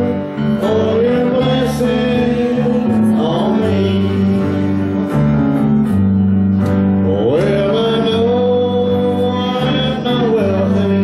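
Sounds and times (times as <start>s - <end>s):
man singing gospel song: 0.0s - 5.4s, 6.9s - 11.0s
guitar: 0.0s - 11.0s
low accompaniment: 0.0s - 11.0s.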